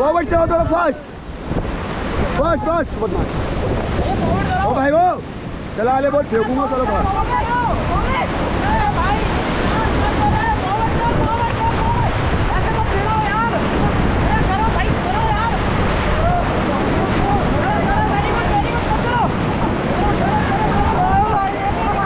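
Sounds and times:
rushing whitewater: 0.0s - 22.0s
wind buffeting microphone: 0.0s - 22.0s.

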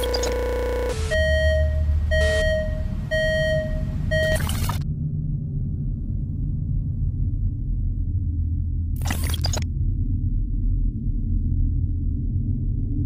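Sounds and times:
electronic beeps: 0.0s - 4.8s, 9.0s - 9.6s
electronic buzz: 0.0s - 4.8s, 9.0s - 9.6s
low rumble: 0.0s - 13.0s.

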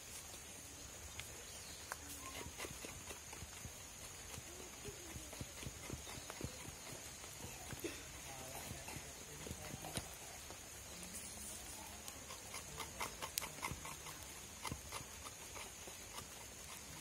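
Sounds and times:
faint high-pitched hiss: 0.0s - 17.0s.

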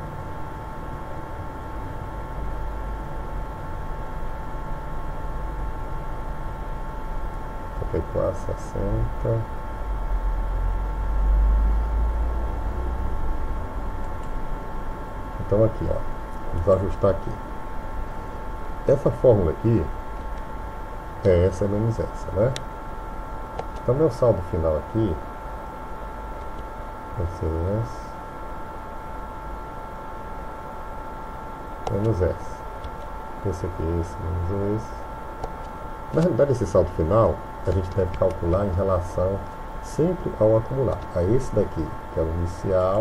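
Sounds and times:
thin electrical whine: 0.0s - 43.0s.

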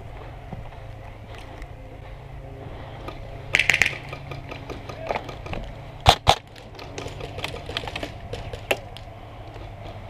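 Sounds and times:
sharp crack: 3.5s - 5.3s, 6.0s - 8.1s
airsoft gun clicks and snaps: 3.6s - 4.2s.

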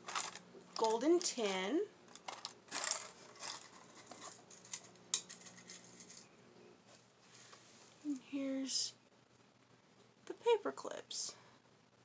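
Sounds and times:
paper clips clinking in tin: 0.0s - 6.2s.

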